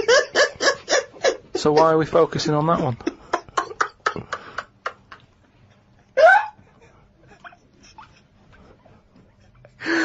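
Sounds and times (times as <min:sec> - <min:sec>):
breathy laughter: 0:00.0 - 0:02.0, 0:03.0 - 0:05.2, 0:06.0 - 0:10.0.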